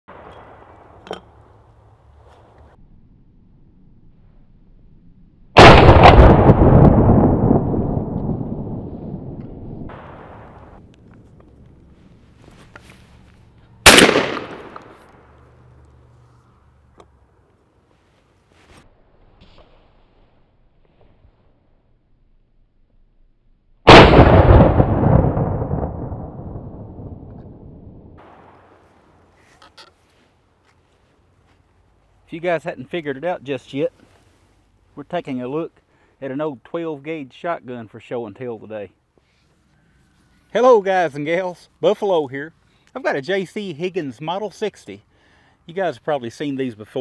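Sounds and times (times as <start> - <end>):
shotgun shot: 5.6 - 7.5, 13.9 - 15.2, 23.9 - 26.2
rolling echo: 5.6 - 11.9, 13.8 - 15.8.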